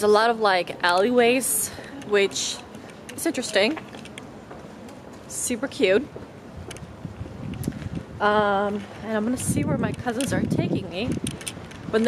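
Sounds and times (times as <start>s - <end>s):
wind buffeting microphone: 5.7s - 12.0s.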